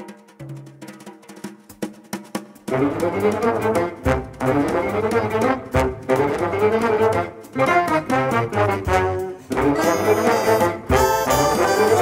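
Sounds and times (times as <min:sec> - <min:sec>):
drum strokes: 0:00.0 - 0:12.0
jazz big band music: 0:02.3 - 0:12.0.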